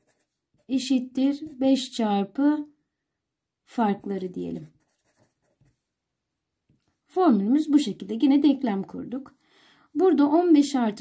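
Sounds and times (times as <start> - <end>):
marker scratching on paper: 0.0 - 1.9, 3.8 - 5.8.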